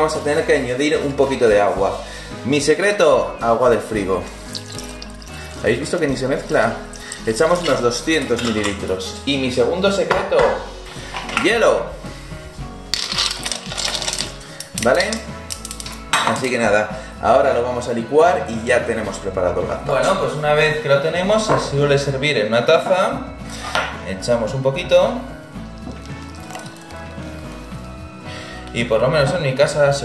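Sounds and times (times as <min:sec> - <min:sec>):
background music: 0:00.0 - 0:30.0
liquid pouring into a bowl: 0:04.3 - 0:08.9, 0:13.0 - 0:16.0, 0:25.6 - 0:27.6
ice cubes clattering in metal jug: 0:06.9 - 0:08.8, 0:12.9 - 0:16.6, 0:25.8 - 0:27.1.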